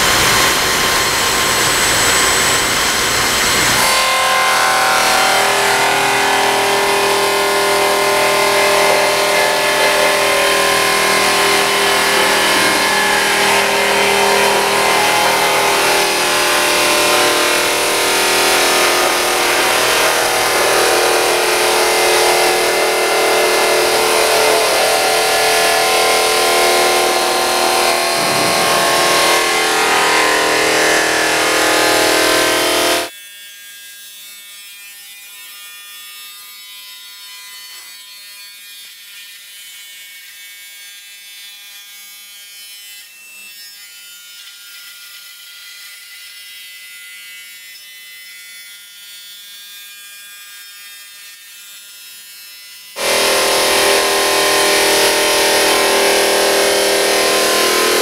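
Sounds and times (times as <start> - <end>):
thin high whine: 0.0 - 33.1, 53.0 - 58.0
saw blade cutting stone: 0.0 - 58.0.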